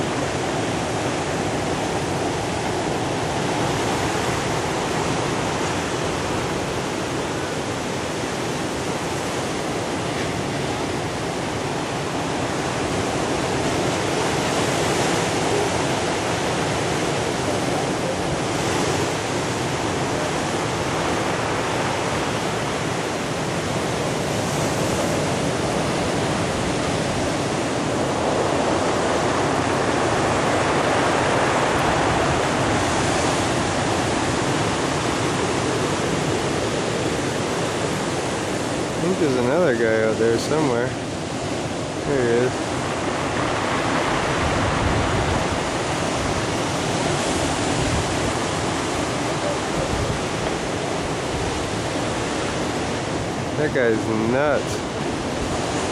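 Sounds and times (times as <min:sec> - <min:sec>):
ocean surf breaking: 0:00.0 - 0:55.9.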